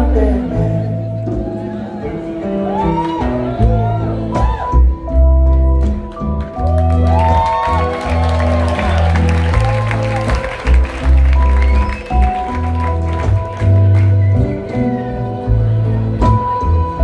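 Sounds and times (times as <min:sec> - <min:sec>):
crowd noise: 0:00.0 - 0:17.0
live rock band playing: 0:00.0 - 0:17.0.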